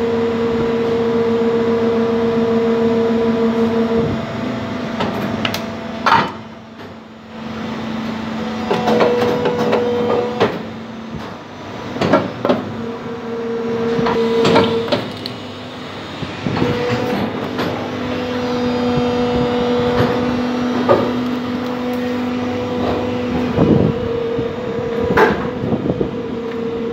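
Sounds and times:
injection moulding machine hum: 0.0 - 26.9.

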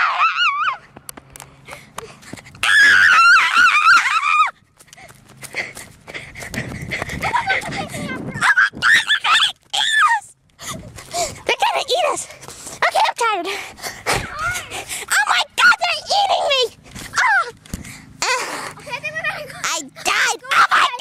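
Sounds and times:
children screaming: 0.0 - 0.9, 2.6 - 4.6, 8.4 - 10.3, 20.2 - 21.0.

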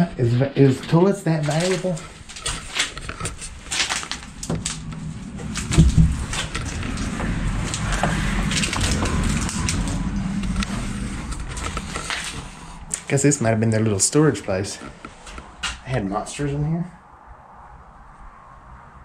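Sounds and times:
footsteps on debris: 0.8 - 13.1
knocks and crunches: 1.4 - 13.2
low rumble: 1.4 - 19.0.

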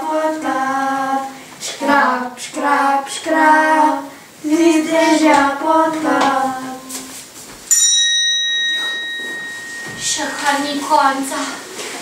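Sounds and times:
child singing: 0.0 - 7.0
small bell ringing: 7.7 - 11.2.

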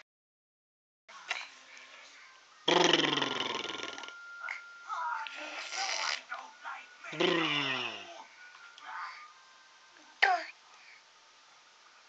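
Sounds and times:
faint steady high tone: 3.3 - 10.1.

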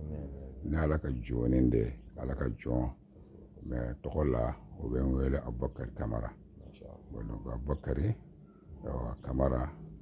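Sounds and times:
man talking: 0.0 - 8.2, 8.8 - 9.8.

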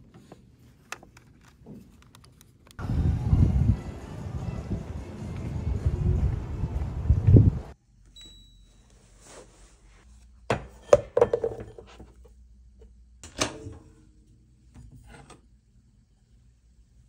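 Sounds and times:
wind rumble on microphone: 2.8 - 7.8.

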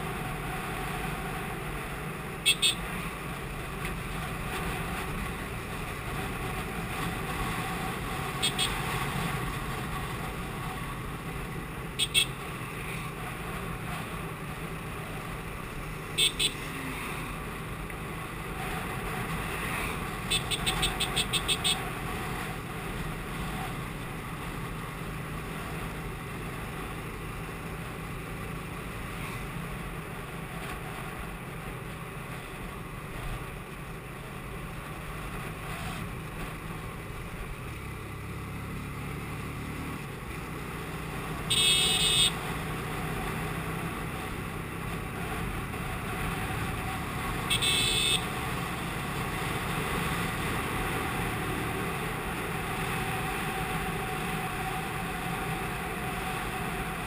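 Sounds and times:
horn beeps: 2.4 - 2.9, 8.4 - 8.8, 12.0 - 12.4, 16.2 - 16.7, 20.3 - 21.8, 41.5 - 42.4, 47.4 - 48.3.

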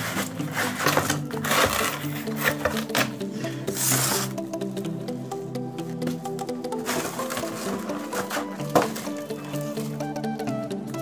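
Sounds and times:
cardboard rubbing and scraping: 0.0 - 3.1, 3.7 - 4.4, 6.8 - 9.9
background music: 0.0 - 11.0.

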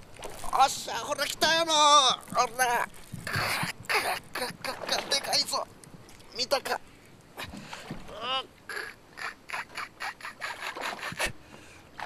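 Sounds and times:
person exclaiming: 8.1 - 10.4.

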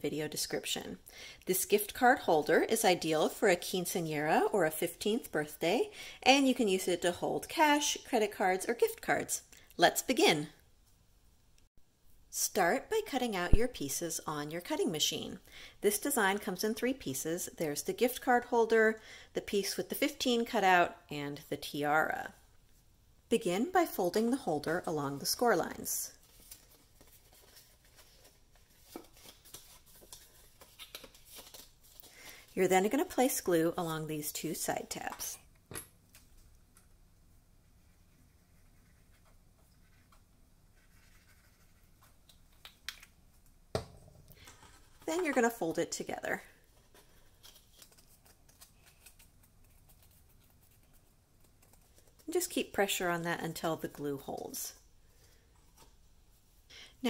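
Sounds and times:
cardstock rustling being folded: 24.6 - 33.4, 44.6 - 53.1.

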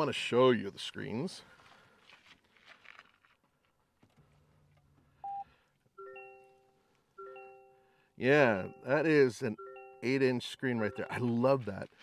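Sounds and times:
bell-like multi-tone chime: 6.0 - 11.6.

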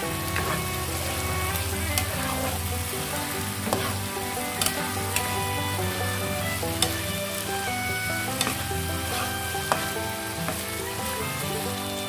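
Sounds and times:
background music: 0.0 - 12.0
chicken sizzling in a wok: 0.0 - 12.0
spatula clicking against pan: 4.6 - 5.4, 6.8 - 7.0, 8.4 - 8.6.

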